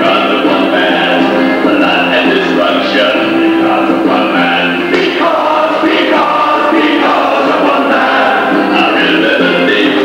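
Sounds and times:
group of voices singing: 0.0 - 10.0
musical accompaniment: 0.0 - 10.0.

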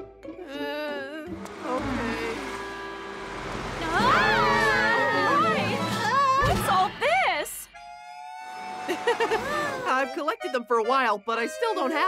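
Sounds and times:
character giggling: 8.9 - 9.9.

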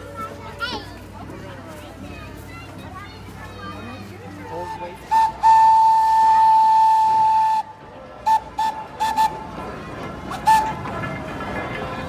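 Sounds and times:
locomotive whistle toots: 5.1 - 9.5, 10.3 - 10.9.

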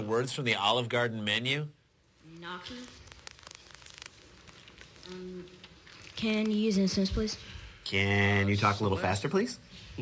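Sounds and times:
faint crackling clicks: 2.6 - 6.8.

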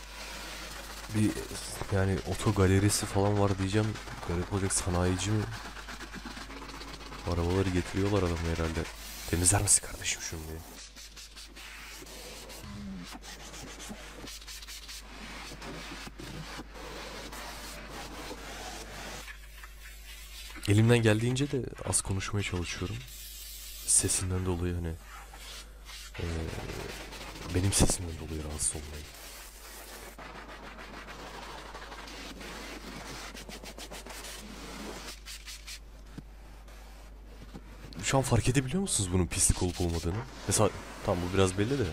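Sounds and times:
sponge scrubbing plastic: 0.0 - 41.9.

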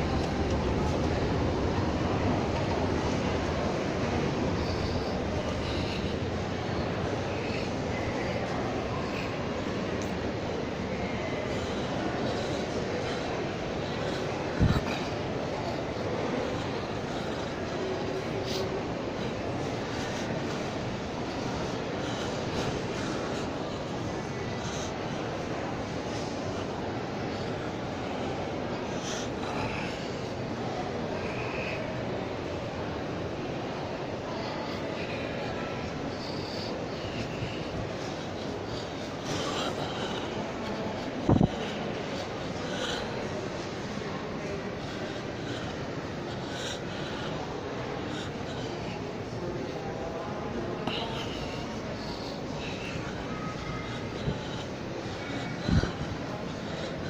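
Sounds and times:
shopping mall rumbling: 0.0 - 57.0.

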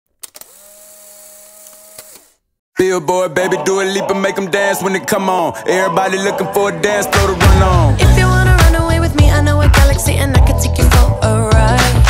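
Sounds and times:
motorised whir: 0.2 - 2.4.

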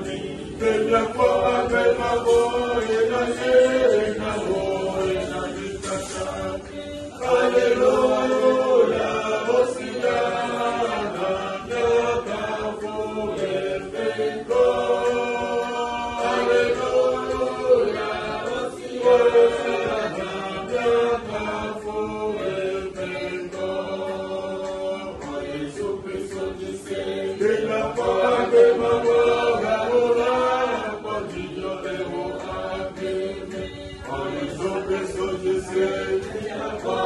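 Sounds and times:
group singing a worship song: 0.0 - 37.0.

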